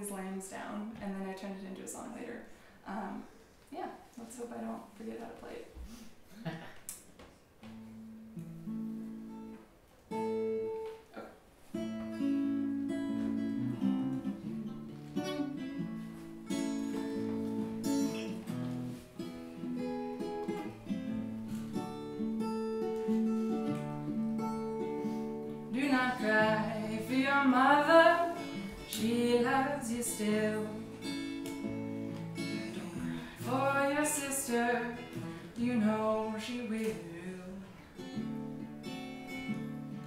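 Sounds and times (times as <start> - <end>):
acoustic guitar picking: 7.6 - 40.0
woman singing: 25.7 - 31.2, 32.4 - 37.8.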